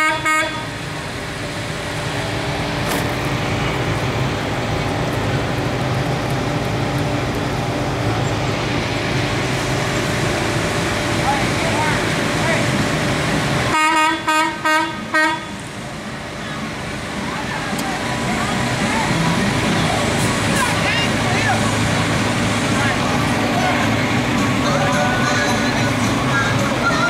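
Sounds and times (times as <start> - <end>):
truck horn toots: 0.0 - 0.7, 13.7 - 15.6
truck engine running: 0.0 - 27.0.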